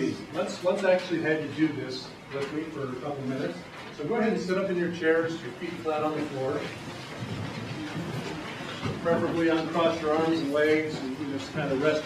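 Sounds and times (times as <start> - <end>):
chairs and feet moving: 5.8 - 12.0.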